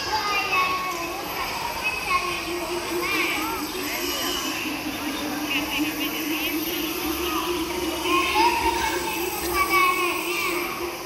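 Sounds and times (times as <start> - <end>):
children's voices: 0.0 - 11.0
child's voice through pa: 8.0 - 10.9.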